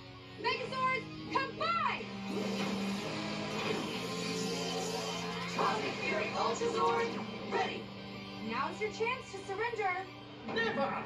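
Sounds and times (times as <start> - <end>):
tv soundtrack music: 0.0 - 11.0.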